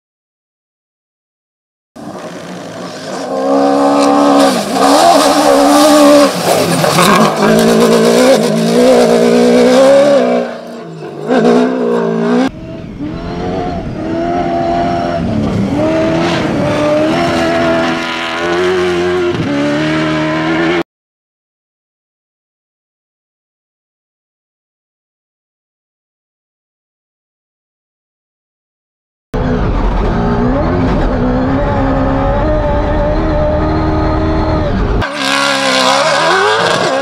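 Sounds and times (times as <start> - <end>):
car engine revving hard: 2.0 - 20.8, 29.4 - 37.0.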